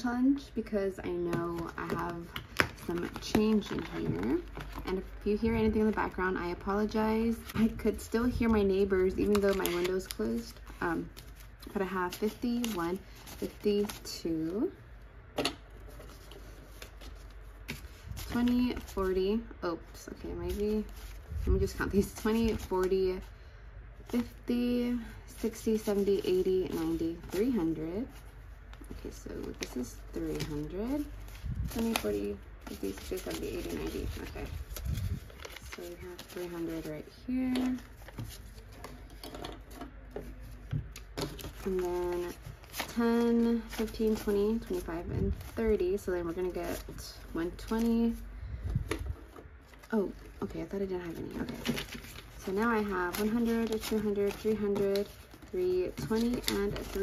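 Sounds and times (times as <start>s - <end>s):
low room hum: 0.0s - 57.0s
banknotes rustling and flicking: 0.6s - 14.8s, 15.6s - 23.4s, 24.0s - 57.0s.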